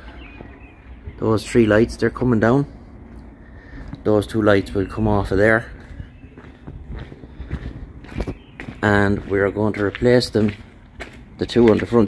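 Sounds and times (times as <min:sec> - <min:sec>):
footsteps on concrete: 0:02.9 - 0:12.0.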